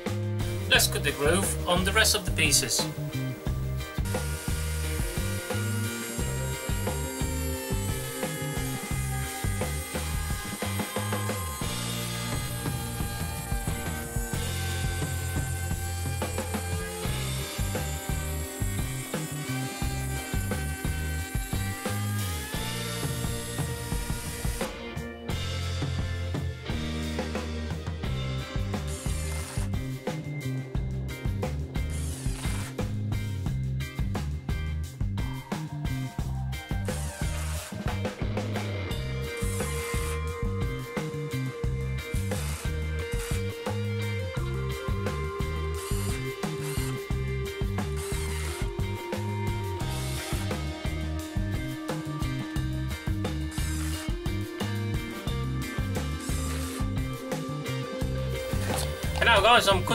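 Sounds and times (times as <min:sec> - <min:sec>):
background music: 0:00.0 - 0:59.9
router whining: 0:00.6 - 0:24.8, 0:28.6 - 0:29.9, 0:31.8 - 0:32.9, 0:36.8 - 0:59.9.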